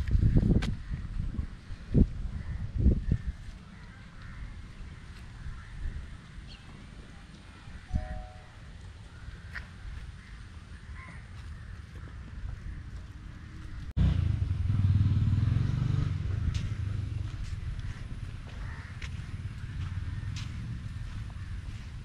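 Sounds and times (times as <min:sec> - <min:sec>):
crow calls: 0:02.4 - 0:06.2, 0:08.0 - 0:13.7, 0:17.8 - 0:20.6.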